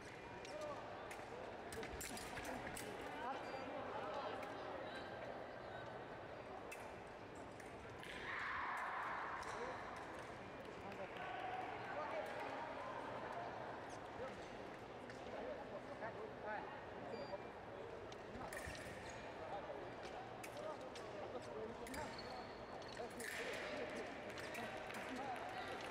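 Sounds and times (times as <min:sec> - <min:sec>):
fencing blades clicking: 0:23.2 - 0:23.7.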